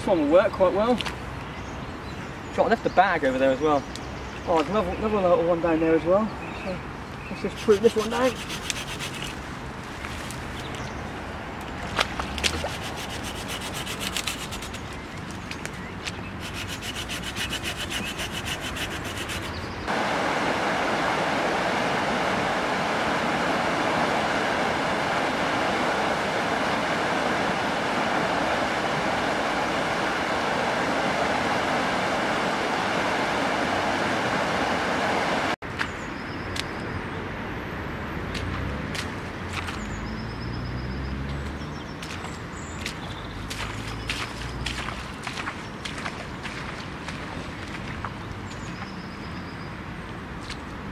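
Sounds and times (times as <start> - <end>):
hand saw cutting branch: 7.6 - 9.4, 12.4 - 14.9, 16.4 - 19.7
river water rushing over weir: 16.4 - 35.6.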